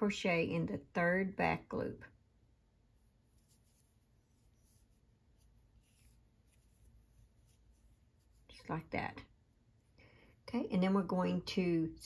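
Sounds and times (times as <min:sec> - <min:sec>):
yarn rustling on crochet hook: 0:02.8 - 0:10.0.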